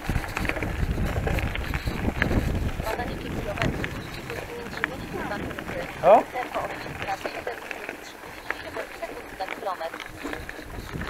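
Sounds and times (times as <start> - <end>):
bicycle tyres crunching on gravel: 0.0 - 11.0
bike clicks and rattles: 0.0 - 11.0
wind on microphone: 0.0 - 11.0.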